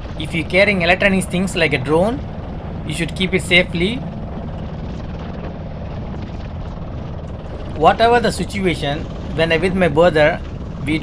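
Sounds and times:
boat motor running: 0:00.0 - 0:11.0
wind: 0:00.0 - 0:11.0.

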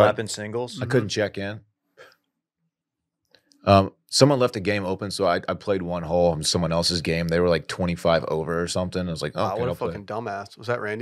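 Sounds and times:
man saying um: 0:00.0 - 0:01.6, 0:03.7 - 0:04.4, 0:09.2 - 0:11.0.

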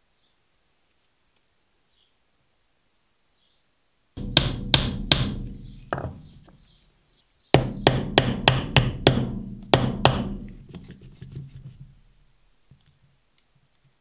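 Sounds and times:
hammer tapping metal pins: 0:04.2 - 0:06.6, 0:07.6 - 0:10.8.

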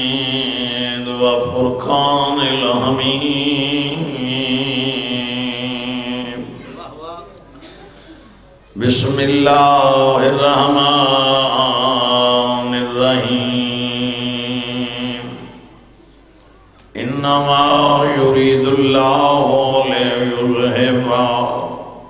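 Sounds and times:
man chanting melodic recitation: 0:00.0 - 0:06.8, 0:08.8 - 0:15.6, 0:16.9 - 0:22.0.

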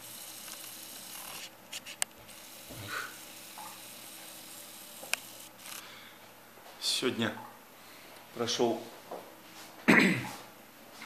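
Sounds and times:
camera clicks: 0:00.1 - 0:02.6, 0:03.2 - 0:05.9
rubbing against microphone: 0:01.1 - 0:02.0.

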